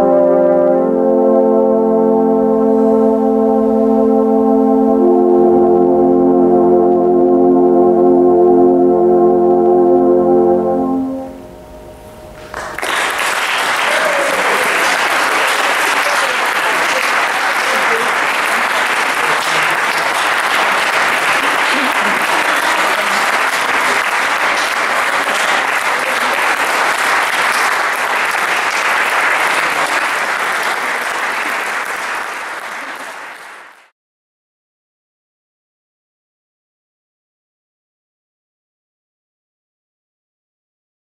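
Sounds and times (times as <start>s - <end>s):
audience applauding: 12.4s - 33.9s.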